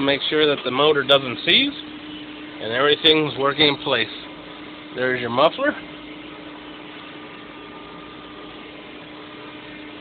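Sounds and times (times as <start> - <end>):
machine hum: 0.0 - 10.0.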